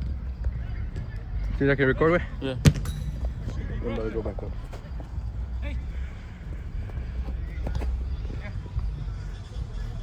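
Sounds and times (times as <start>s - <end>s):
distant voices of players: 0.0s - 10.0s.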